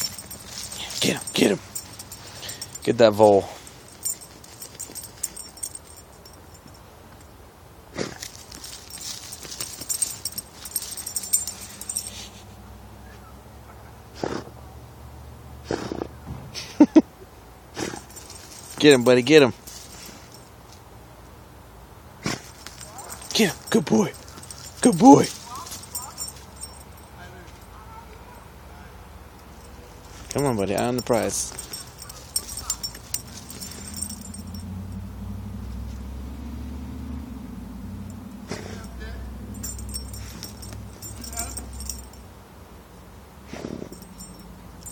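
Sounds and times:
dog paws scraping wood chips: 8.1 - 12.3, 22.3 - 26.6
low engine hum: 29.3 - 42.4.

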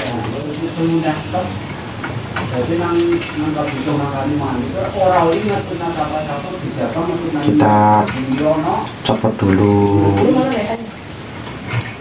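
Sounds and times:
indistinct voice: 9.2 - 10.5.

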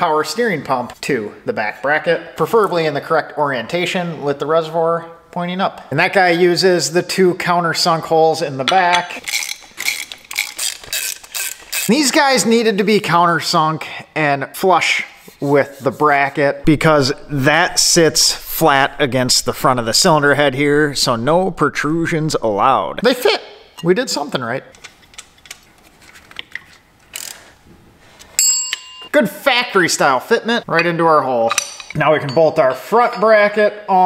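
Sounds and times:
hand ratchet clicking: 9.2 - 12.0, 27.1 - 27.4.

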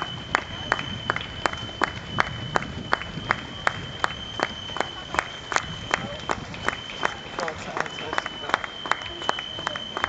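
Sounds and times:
people clapping: 0.0 - 10.0
running shoes slapping on asphalt: 0.0 - 10.0
spectators' voices: 0.0 - 10.0.

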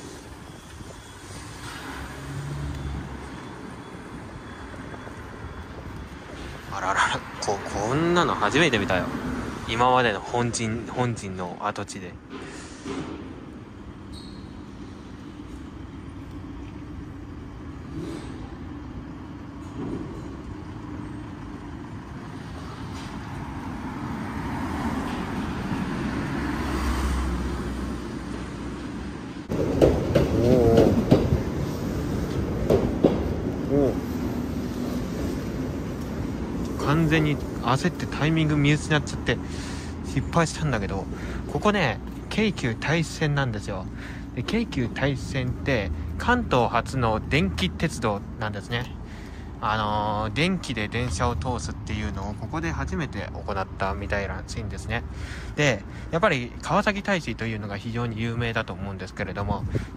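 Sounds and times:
city street noise: 0.0 - 59.9
vehicle engine hum: 12.6 - 59.9
vehicle passing close by: 23.4 - 28.6
faint knocks: 29.5 - 31.5.

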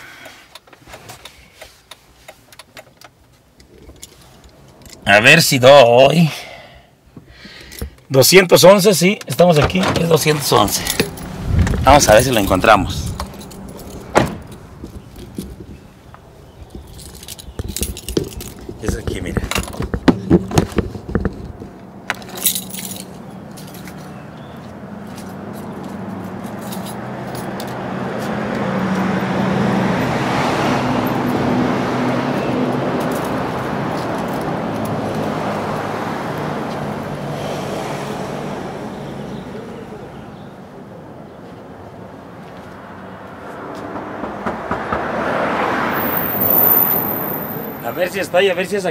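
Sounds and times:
motor vehicle passing: 10.2 - 19.0, 20.8 - 48.8
knocks clicks and rattles: 16.7 - 24.0.

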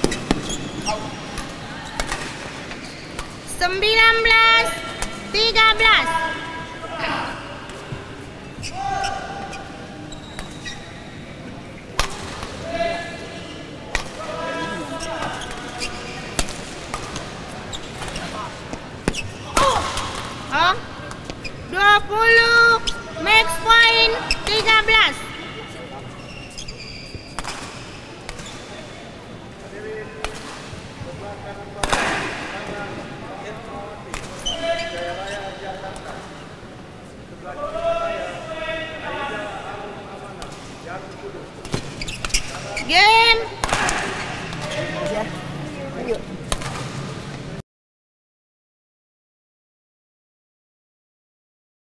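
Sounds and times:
voices: 0.0 - 47.4
racket striking shuttlecock: 12.0 - 12.6, 46.5 - 47.0.

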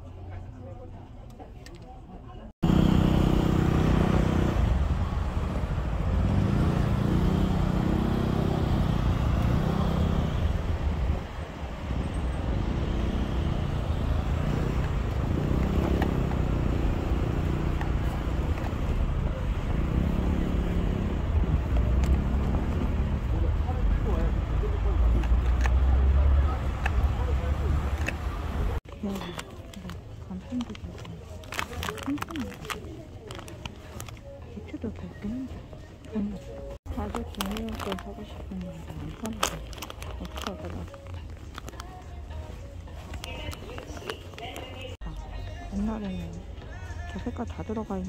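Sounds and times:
cars passing with low rumble: 2.6 - 28.8.

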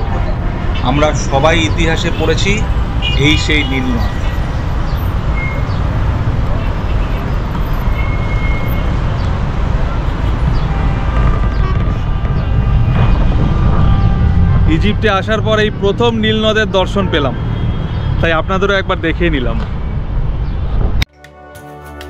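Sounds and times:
road traffic rumble: 0.0 - 21.1.

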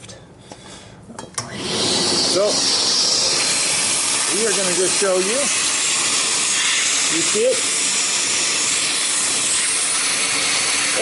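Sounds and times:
vacuum cleaner running: 1.4 - 11.0.

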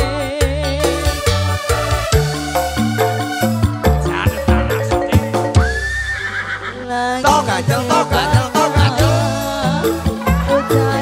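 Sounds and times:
live band music: 0.0 - 11.0
drum beat: 1.3 - 5.8, 7.3 - 11.0.

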